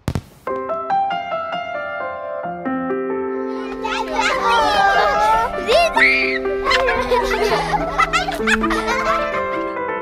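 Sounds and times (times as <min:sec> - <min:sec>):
background music with sustained notes: 0:00.5 - 0:10.0
children shouting and chattering: 0:03.4 - 0:09.7.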